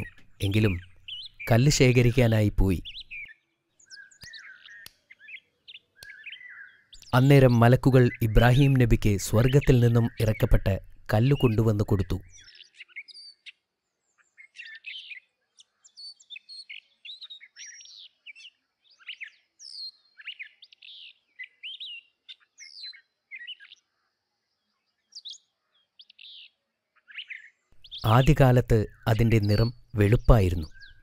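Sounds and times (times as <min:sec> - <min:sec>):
birds chirping and whistling: 0:00.0 - 0:24.1, 0:24.8 - 0:31.0.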